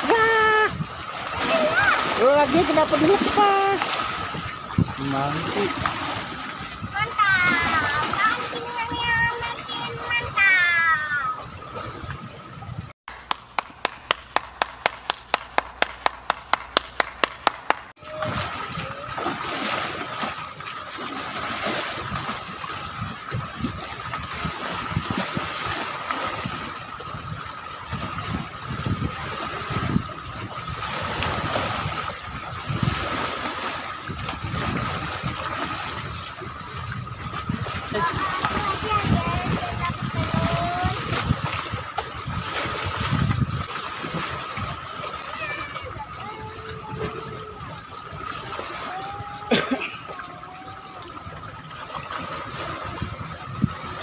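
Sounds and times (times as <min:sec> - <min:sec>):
sea waves splashing on shore: 0:00.0 - 0:54.0.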